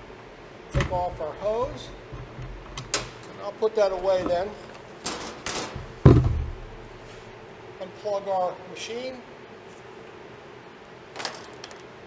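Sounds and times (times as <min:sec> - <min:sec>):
hose rustling: 0:00.7 - 0:07.4
plastic case lid thump: 0:05.8 - 0:06.8.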